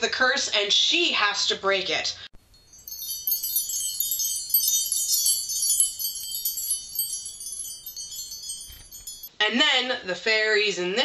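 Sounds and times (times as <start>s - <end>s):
chimes ringing: 2.4s - 9.3s.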